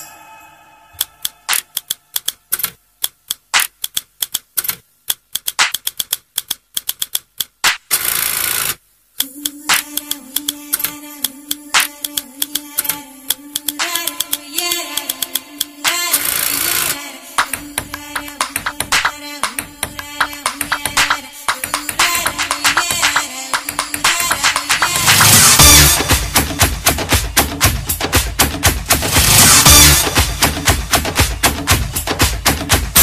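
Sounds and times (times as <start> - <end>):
held low note: 0.0 - 1.5
hissing cymbal crash: 0.0 - 1.5
dry percussive clicks: 1.0 - 25.4.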